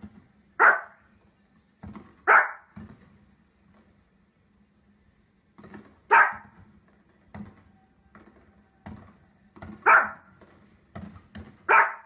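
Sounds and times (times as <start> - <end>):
small dog barking: 0.6 - 1.0, 2.2 - 2.8, 6.1 - 6.6, 9.8 - 10.3, 11.6 - 12.0.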